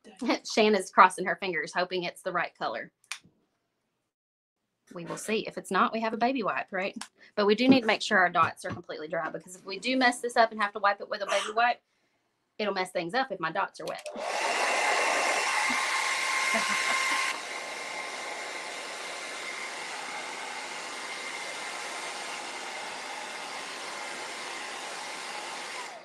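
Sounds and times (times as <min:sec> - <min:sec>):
hair dryer blowing: 0:14.1 - 0:26.0.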